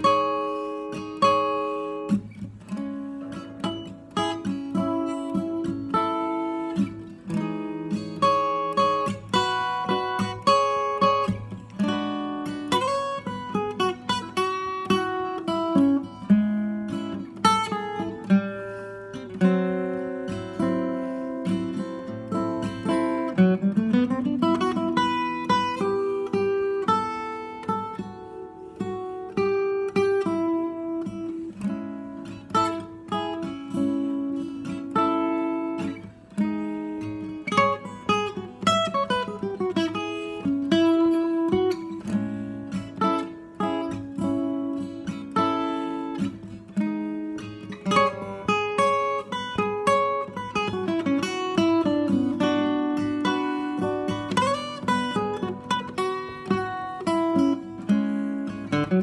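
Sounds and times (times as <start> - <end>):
acoustic guitar instrumental tune: 0.0 - 59.0.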